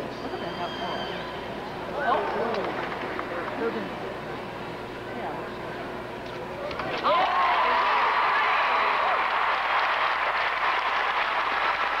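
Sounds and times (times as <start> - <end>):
audience applauding: 7.2 - 12.0.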